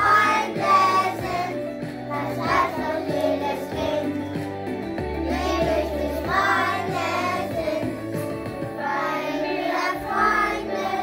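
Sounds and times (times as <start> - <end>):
children singing: 0.0 - 4.2, 5.3 - 8.0, 8.8 - 11.0
instrumental accompaniment: 0.0 - 11.0.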